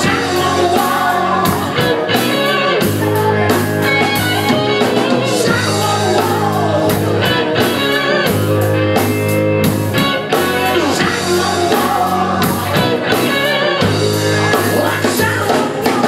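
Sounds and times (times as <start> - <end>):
person singing: 0.0 - 8.8, 9.9 - 16.0
drum kit beat: 0.0 - 16.0
electric guitars: 0.0 - 16.0.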